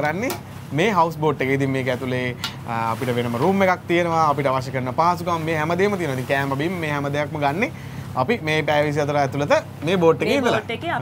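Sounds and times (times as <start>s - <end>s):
person speaking: 9.9s - 11.0s.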